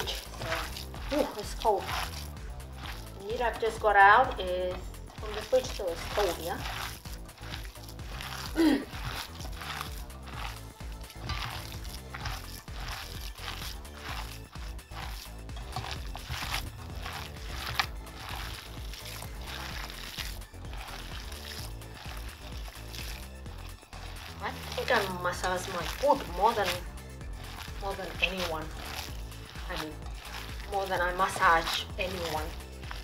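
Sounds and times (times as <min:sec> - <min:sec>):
background music: 0:00.0 - 0:33.0
hands squelching minced meat: 0:00.0 - 0:33.0.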